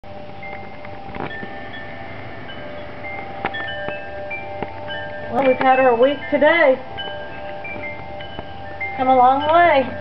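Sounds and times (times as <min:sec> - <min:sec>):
wind chimes ringing: 0:00.1 - 0:10.0.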